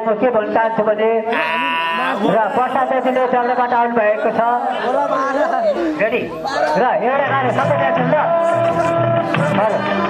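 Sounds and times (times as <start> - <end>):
man singing into microphone: 7.2 - 10.0.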